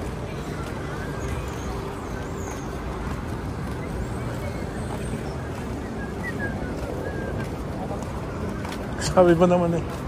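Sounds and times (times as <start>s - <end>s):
faint voices of passersby: 0.0s - 10.0s
low rumble of road traffic: 0.0s - 10.0s.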